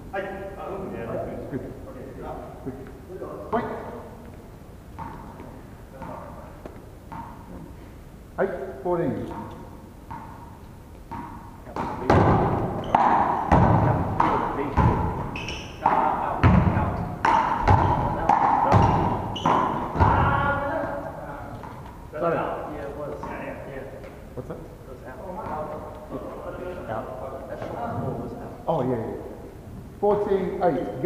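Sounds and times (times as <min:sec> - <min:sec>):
rubber ball thumping wall and floor: 0:11.1 - 0:20.5.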